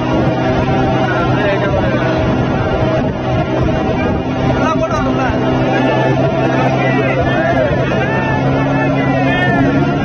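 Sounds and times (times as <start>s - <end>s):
motorboat engine running: 0.0s - 10.0s
people calling out: 5.3s - 10.0s.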